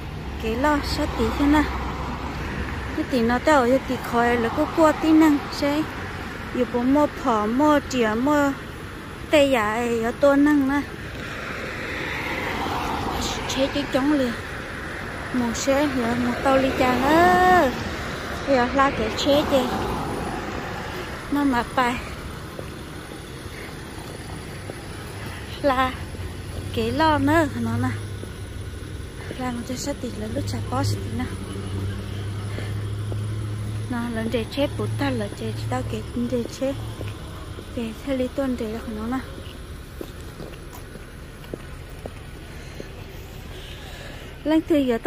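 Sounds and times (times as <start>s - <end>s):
street traffic hum: 0.0s - 45.0s
car driving past: 11.0s - 37.8s
person speaking: 15.3s - 20.0s.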